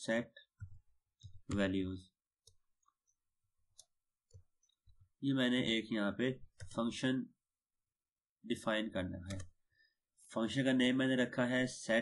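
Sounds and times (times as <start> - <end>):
faint keyboard keystrokes: 9.2 - 9.6.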